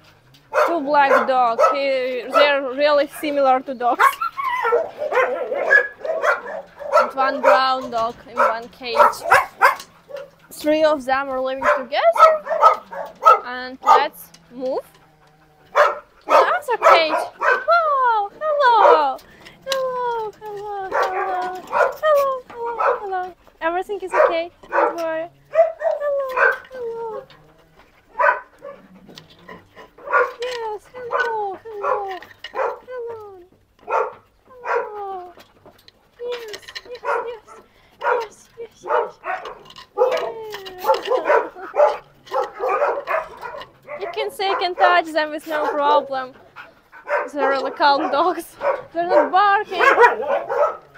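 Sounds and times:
dogs barking and whining: 0.0s - 50.9s.

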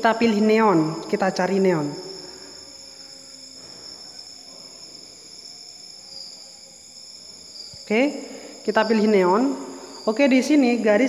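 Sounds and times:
high-pitched ringing tones: 0.0s - 11.0s.

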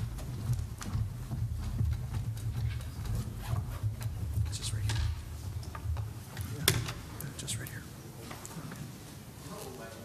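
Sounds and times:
footsteps on a stage: 0.0s - 10.0s.

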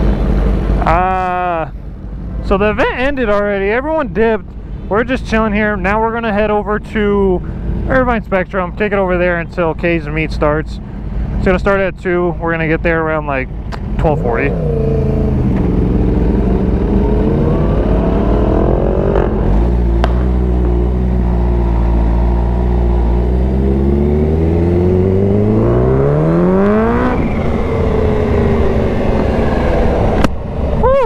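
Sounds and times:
motorcycle engine revving: 14.0s - 30.2s.

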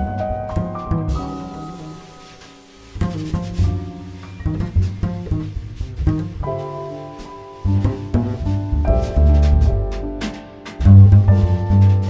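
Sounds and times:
plucked double bass: 0.0s - 2.0s, 2.9s - 12.0s
piano: 0.0s - 12.0s
light drums: 0.6s - 12.0s.

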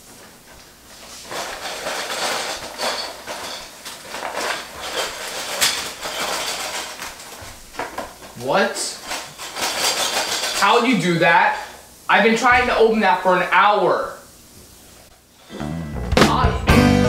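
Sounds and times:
plastic pieces clattering: 1.3s - 8.3s, 9.0s - 10.7s.

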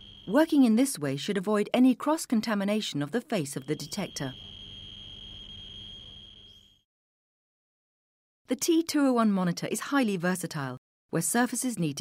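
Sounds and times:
high-pitched alarm tone: 0.0s - 0.6s, 3.5s - 6.8s.

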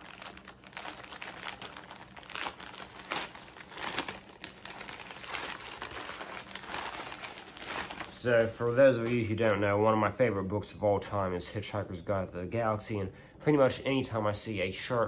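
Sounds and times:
packaging crinkling and rustling: 0.0s - 10.0s.

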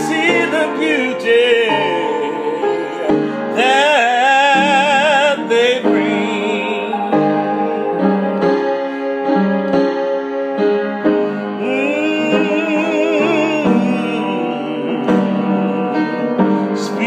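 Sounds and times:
man singing: 0.0s - 9.0s, 11.0s - 17.0s
upright piano chords: 0.0s - 17.0s.

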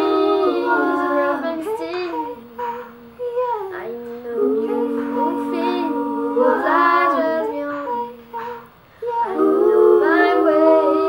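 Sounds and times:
girl singing a cappella: 0.0s - 11.0s.

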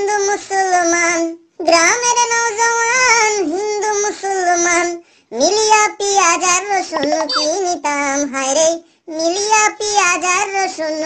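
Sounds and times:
child singing unaccompanied: 0.0s - 11.0s.

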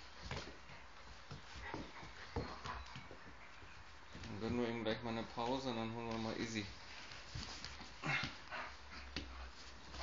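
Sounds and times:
dogs play-wrestling: 0.0s - 10.0s.

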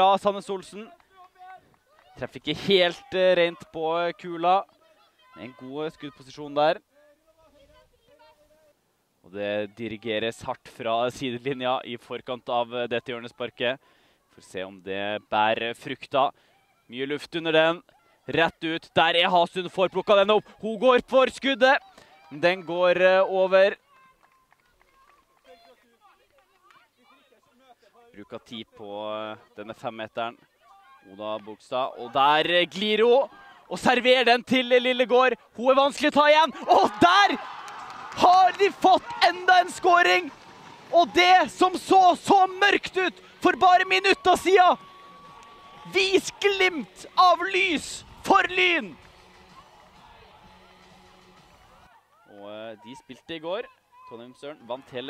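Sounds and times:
man speaking: 31.2s - 37.4s, 38.2s - 40.3s, 40.9s - 44.8s, 45.8s - 49.0s
distant voices calling out: 36.3s - 51.9s.

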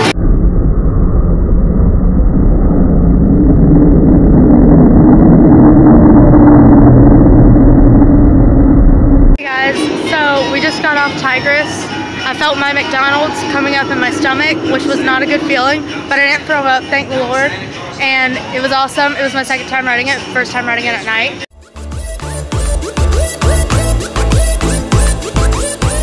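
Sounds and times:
roller coaster rumble: 0.0s - 19.1s
music with singing: 9.7s - 26.0s.

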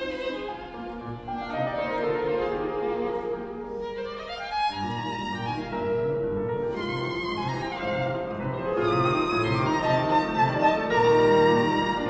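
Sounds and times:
piano accompaniment: 0.0s - 12.0s
violin bowed notes: 0.0s - 12.0s.

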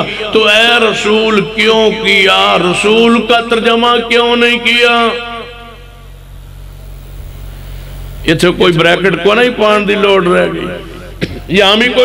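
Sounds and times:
low hum and rumble: 0.0s - 12.0s
faint hiss: 5.7s - 11.8s.

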